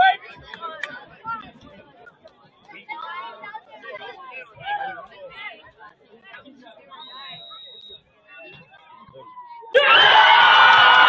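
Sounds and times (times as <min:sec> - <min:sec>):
chatter of people talking: 0:00.0 - 0:11.0.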